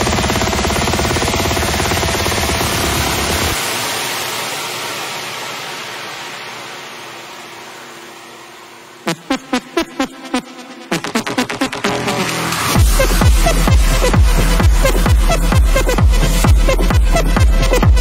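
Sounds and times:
pulsing techno bass: 0.0s - 3.9s, 9.1s - 18.0s
white-noise sweep: 0.0s - 18.0s
hard kick drums: 12.7s - 18.0s.

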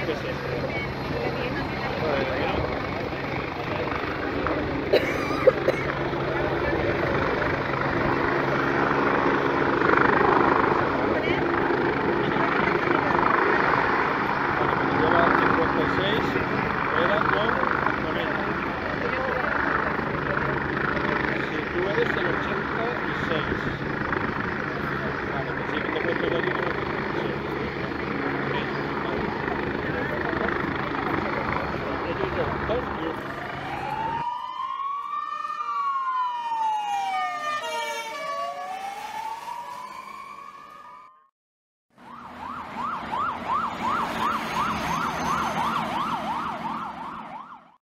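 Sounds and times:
helicopter rotor and engines: 0.0s - 41.3s, 41.9s - 47.8s
siren: 5.9s - 41.3s, 41.9s - 47.8s.

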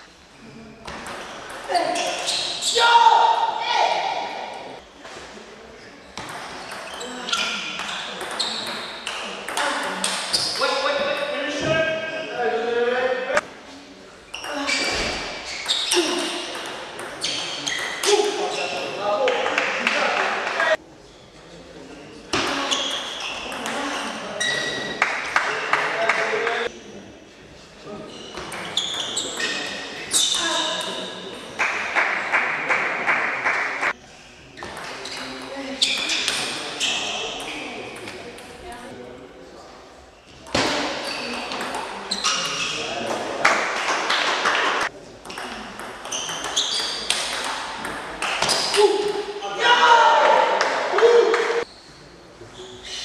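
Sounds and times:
high-pitched squeaks: 1.2s - 2.8s, 28.1s - 31.2s, 46.0s - 47.2s
players shouting: 48.7s - 51.6s.

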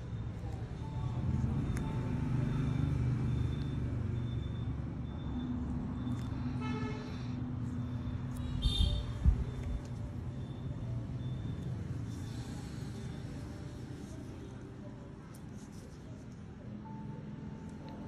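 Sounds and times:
road traffic rumble: 0.0s - 18.0s
car horn toot: 8.6s - 9.1s.

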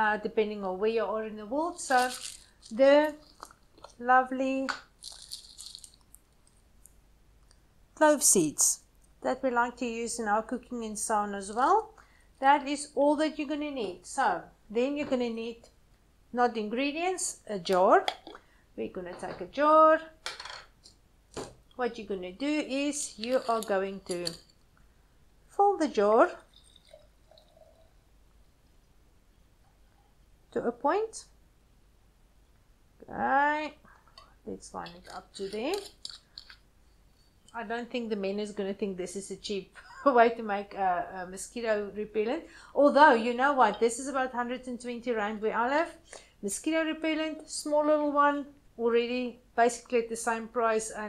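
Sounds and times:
dry cloves rattling: 1.7s - 4.0s, 5.0s - 6.6s, 22.7s - 24.6s, 26.4s - 28.0s, 34.7s - 36.6s
liquid pouring into a glass jar: 26.4s - 28.1s.

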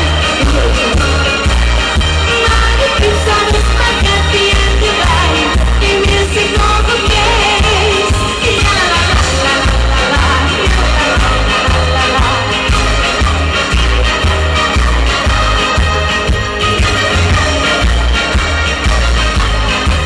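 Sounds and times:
woman singing into microphone: 0.0s - 1.4s, 2.3s - 12.7s
live band music: 0.0s - 20.0s
pulsing bass beat: 0.0s - 20.0s.

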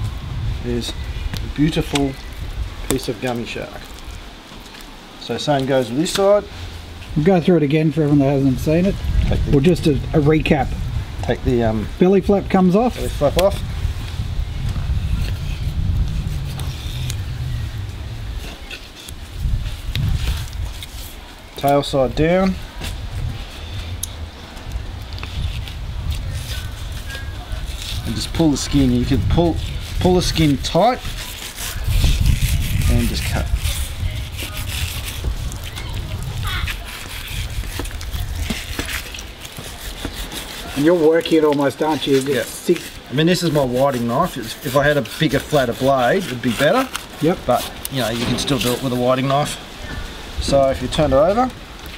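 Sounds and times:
low uneven rumble: 5.0s - 39.8s
small scrapes and clicks: 22.8s - 49.4s
knife sliding under fish skin: 25.2s - 49.6s.

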